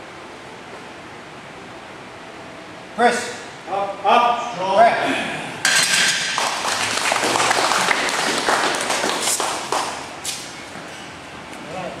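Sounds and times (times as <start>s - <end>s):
people clapping: 6.2s - 10.2s
people cheering: 6.4s - 9.4s.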